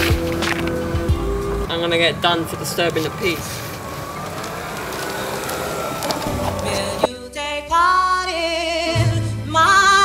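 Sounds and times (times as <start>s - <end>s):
tyres on tarmac: 0.0s - 7.2s
electric wheelchair motor whine: 0.1s - 7.1s.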